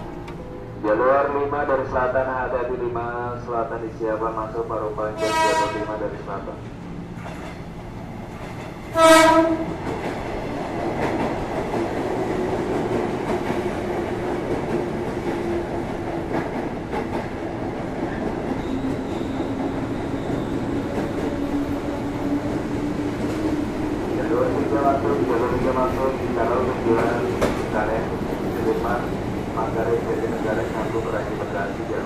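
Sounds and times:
electric train rumbling: 0.0s - 32.0s
train horn blast: 5.2s - 6.0s, 8.9s - 9.7s.

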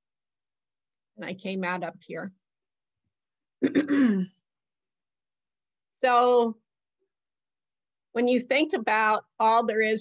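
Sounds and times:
woman clearing her throat: 3.6s - 4.4s.

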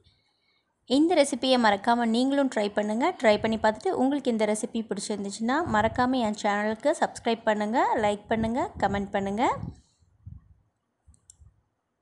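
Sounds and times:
soft low thumps: 3.3s - 3.8s, 5.5s - 6.3s, 8.0s - 11.5s.

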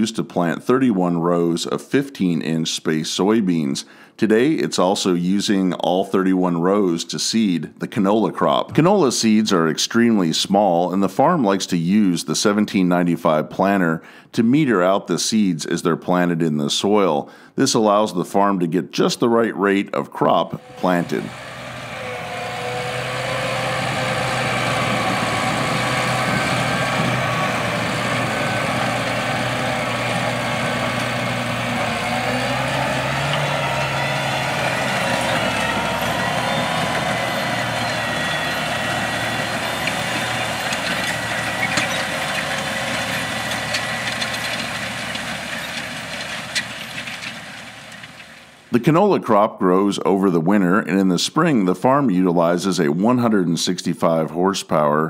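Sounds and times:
tractor engine drone: 20.5s - 48.8s.

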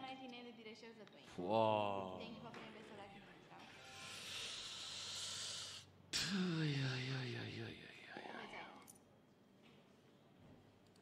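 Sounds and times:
faint background music: 0.0s - 9.0s.

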